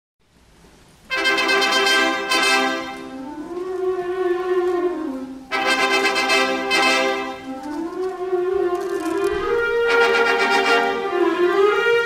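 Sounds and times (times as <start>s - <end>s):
wind band brass chord: 1.1s - 12.0s.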